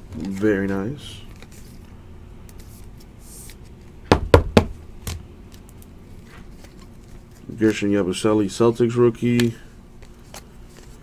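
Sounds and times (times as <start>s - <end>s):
trading cards knocking on table: 4.1s - 5.2s.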